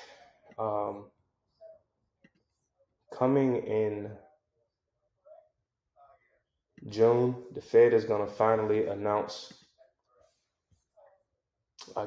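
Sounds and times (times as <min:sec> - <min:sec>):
faint breaths: 0:00.0 - 0:00.6
person speaking: 0:06.8 - 0:09.5.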